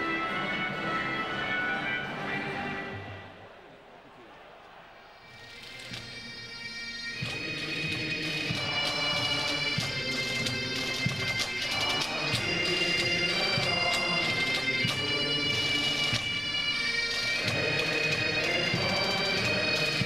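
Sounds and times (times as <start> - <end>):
bagpipes holding notes: 0.0 - 3.2, 5.2 - 20.0.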